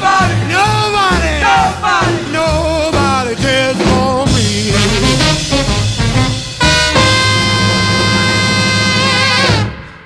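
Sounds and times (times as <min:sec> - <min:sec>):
swing band sustained note: 0:03.0 - 0:10.0.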